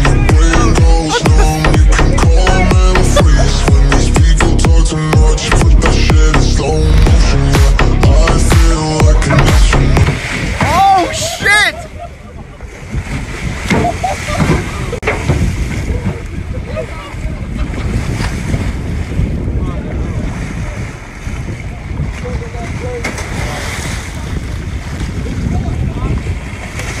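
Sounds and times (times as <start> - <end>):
water splashing against hull: 0.0 - 27.0
wind buffeting microphone: 5.4 - 27.0.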